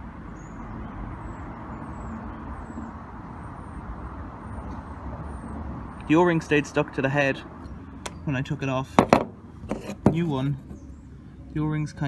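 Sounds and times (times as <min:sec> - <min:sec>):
distant road traffic rumble: 0:00.0 - 0:12.0.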